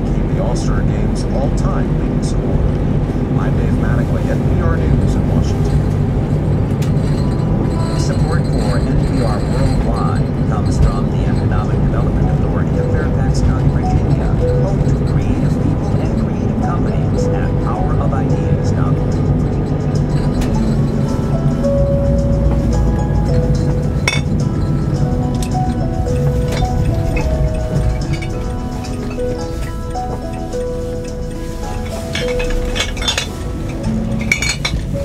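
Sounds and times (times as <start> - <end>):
car radio playing: 0.0 - 35.0
car road and engine rumble: 0.0 - 35.0.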